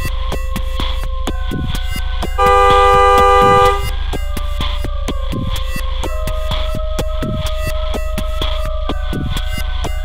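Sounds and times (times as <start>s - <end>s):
background music with steady beat: 0.0s - 10.0s
car horn honking: 2.4s - 4.0s.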